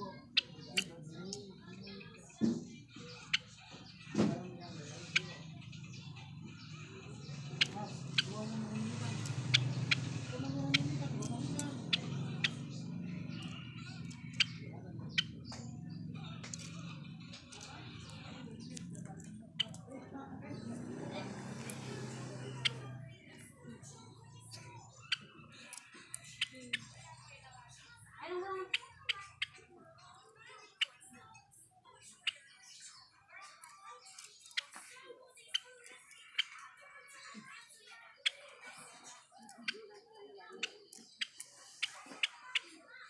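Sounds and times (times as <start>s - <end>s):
low background murmur: 0.0s - 43.0s
sparrows chirping: 0.0s - 43.0s.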